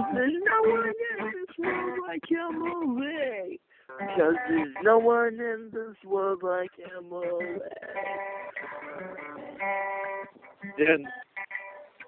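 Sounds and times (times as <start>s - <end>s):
guitar strumming: 0.0s - 12.0s.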